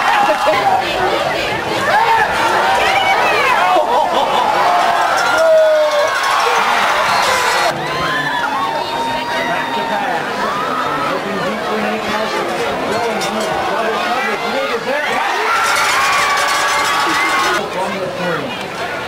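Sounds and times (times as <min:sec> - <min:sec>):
crowd talking and calling out: 0:00.0 - 0:19.0.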